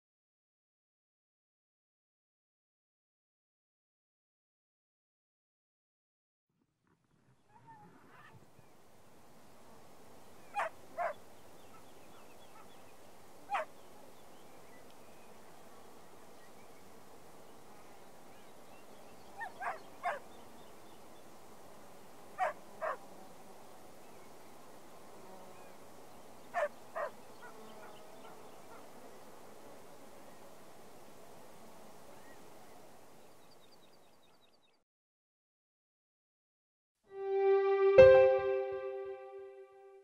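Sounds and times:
sharp bird calls: 10.4s - 14.9s, 19.1s - 20.9s, 22.4s - 23.0s, 26.5s - 28.8s.

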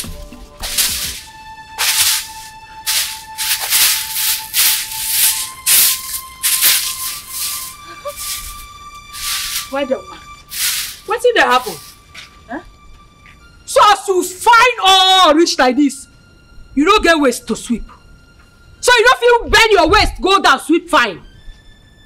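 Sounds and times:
broom sweeping: 0.0s - 12.5s
background music with held tones: 0.0s - 22.0s.

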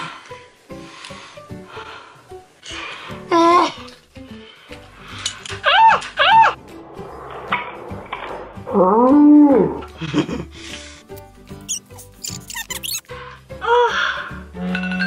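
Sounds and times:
background music: 0.0s - 15.0s.

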